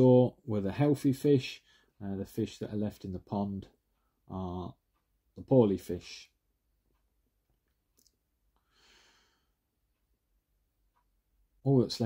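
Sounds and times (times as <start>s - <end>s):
faint breath: 1.6s - 2.0s, 8.6s - 9.7s.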